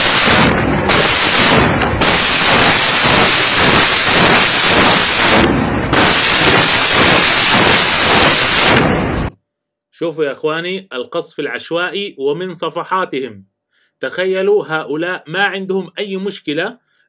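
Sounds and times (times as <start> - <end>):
rocket launcher salvo rushing: 0.0 - 9.3.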